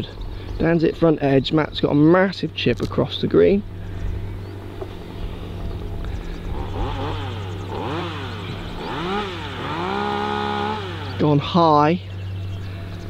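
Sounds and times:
low hum: 0.0s - 13.0s
engine revving: 3.6s - 13.0s.

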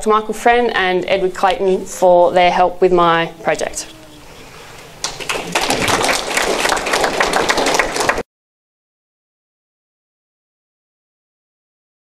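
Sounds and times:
audience applauding: 4.6s - 8.2s.

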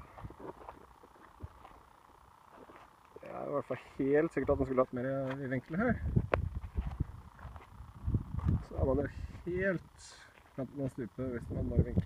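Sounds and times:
wind rumble on microphone: 5.8s - 10.0s, 11.4s - 12.0s
microphone handling noise: 6.0s - 10.0s.

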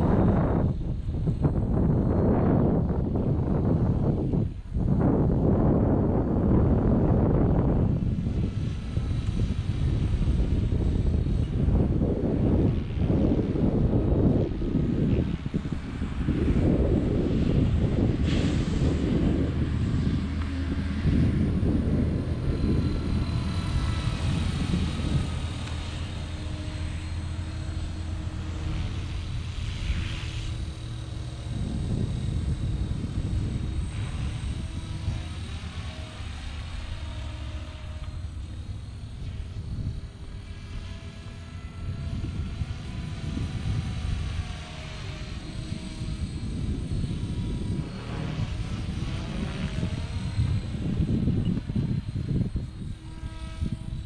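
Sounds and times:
rc helicopter whine: 0.0s - 54.0s
wind buffeting microphone: 0.0s - 54.0s.

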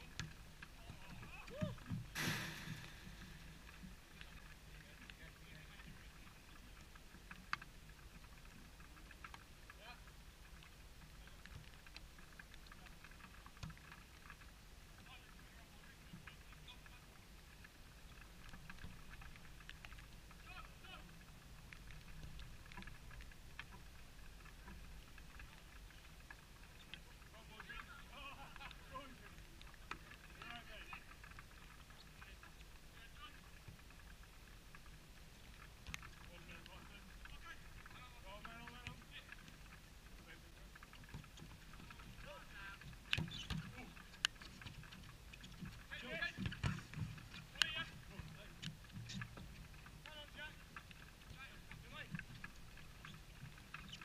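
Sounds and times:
distant low rumble: 0.0s - 6.5s
distant shouts of players: 1.1s - 1.8s.

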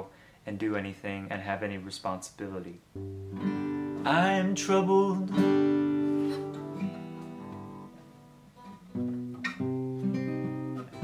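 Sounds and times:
acoustic guitar strumming chords: 3.0s - 11.0s.

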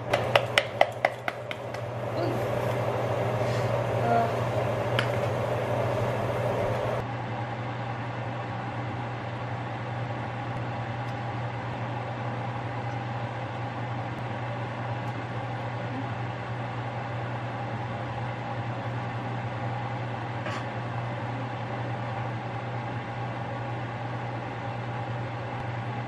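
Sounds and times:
gas stove burner hum and hiss: 0.0s - 26.0s.

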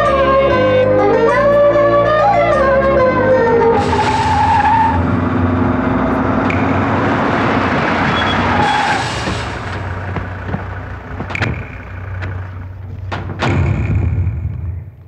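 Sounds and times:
car driving up: 0.0s - 15.0s
tyres skidding: 0.0s - 15.0s
sharp clicks: 10.6s - 12.5s.

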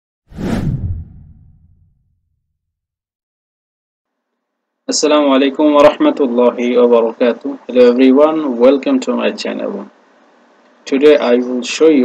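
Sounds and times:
whoosh with deep tail: 0.3s - 2.1s.

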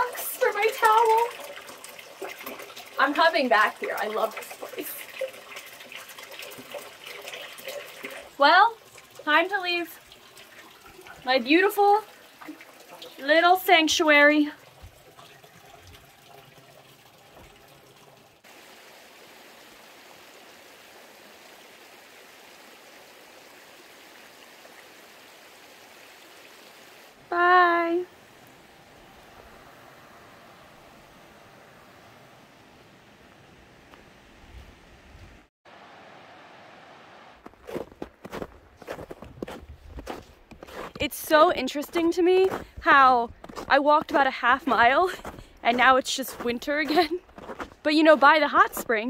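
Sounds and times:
faint running water: 0.0s - 49.0s
person calling out: 27.2s - 28.1s
footsteps on snow: 37.4s - 48.9s.

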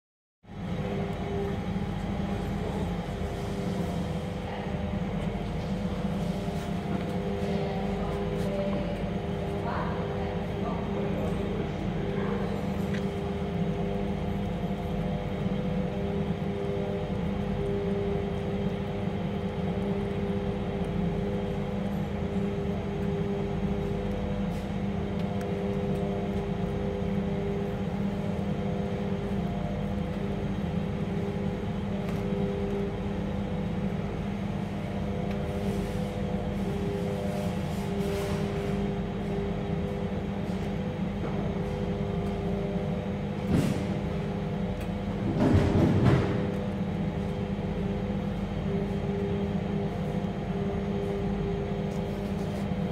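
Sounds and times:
machine hum: 0.4s - 52.9s.

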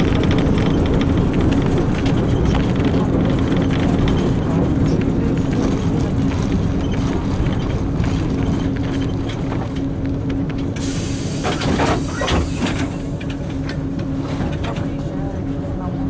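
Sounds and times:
bus engine running: 0.0s - 16.0s
road rumble: 0.0s - 16.0s.

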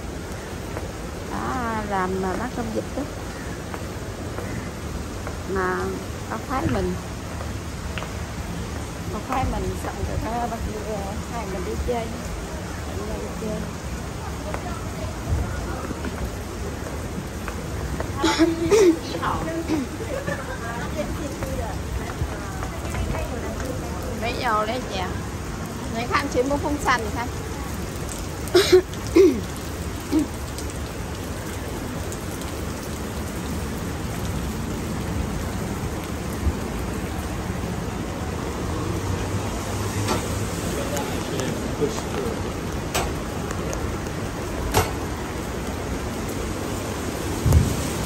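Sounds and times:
steady rain falling: 0.0s - 48.0s.

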